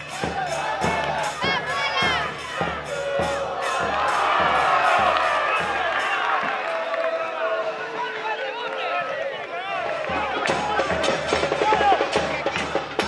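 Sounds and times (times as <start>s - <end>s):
steady drumbeat: 0.0s - 6.6s, 9.8s - 13.0s
crowd shouting and cheering: 0.0s - 13.0s.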